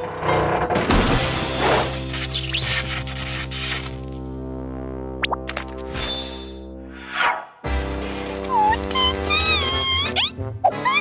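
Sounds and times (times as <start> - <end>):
background music: 0.0 - 11.0
high-pitched cartoon character cries: 8.5 - 11.0.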